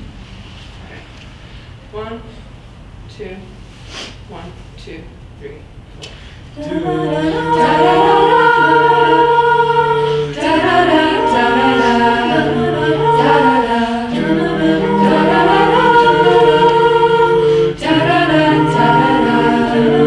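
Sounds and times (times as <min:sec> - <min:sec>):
a cappella group singing: 0:06.5 - 0:20.0.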